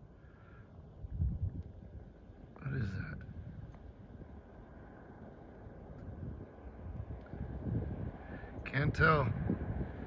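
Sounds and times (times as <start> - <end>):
wind rumbling on microphone: 0.8 - 10.0.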